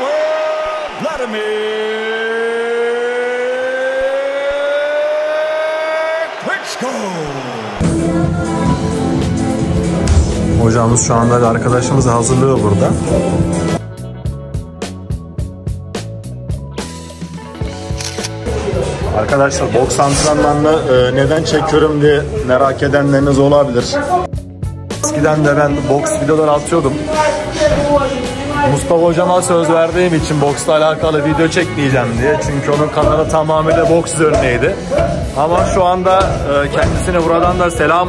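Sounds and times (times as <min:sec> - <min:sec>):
background music with bass line: 0:07.8 - 0:38.0
camera shutter clicks: 0:17.9 - 0:18.4.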